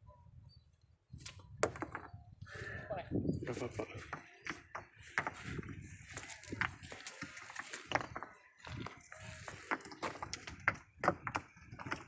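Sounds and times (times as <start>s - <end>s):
stones knocking together: 4.0s - 12.0s.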